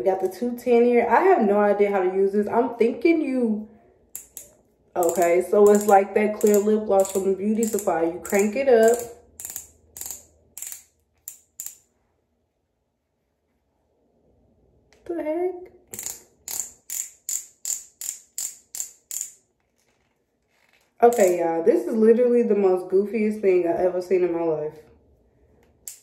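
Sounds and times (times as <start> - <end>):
twist mechanism clicking: 4.2 - 11.9, 15.9 - 19.9, 20.6 - 21.4.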